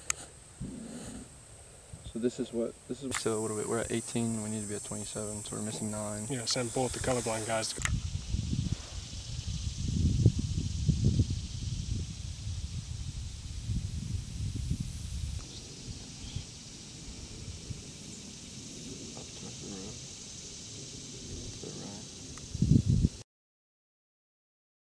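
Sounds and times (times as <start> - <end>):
steady high hiss: 0.0 - 23.2
wind rumbling on microphone: 3.1 - 23.2
faint voices: 19.0 - 20.0.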